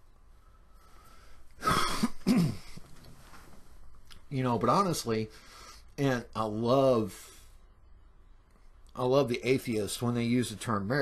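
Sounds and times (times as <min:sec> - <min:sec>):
man clearing his throat: 0:01.6 - 0:02.8.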